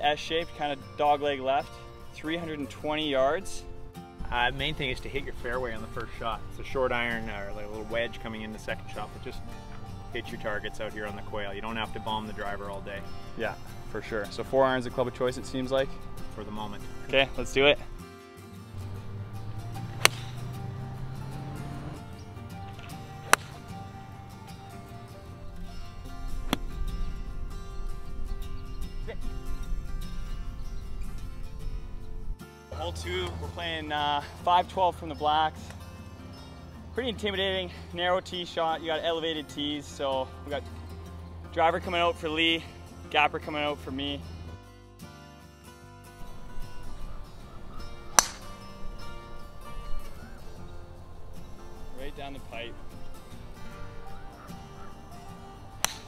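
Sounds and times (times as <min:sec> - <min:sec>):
background music: 0:00.0 - 0:56.0
golf club striking ball: 0:18.8 - 0:27.0, 0:48.0 - 0:48.8, 0:55.8 - 0:56.0.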